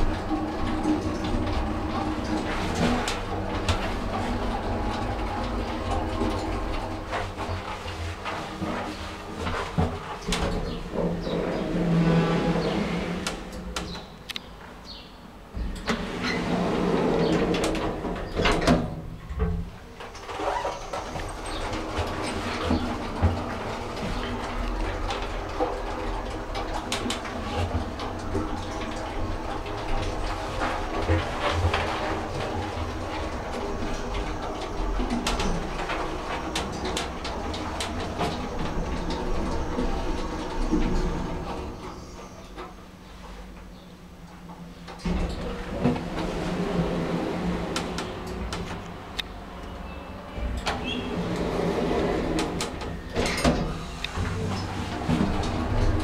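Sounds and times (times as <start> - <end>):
sliding lift doors: 0.0 - 56.0
lift machinery humming: 10.5 - 14.4, 15.5 - 19.6, 20.8 - 56.0.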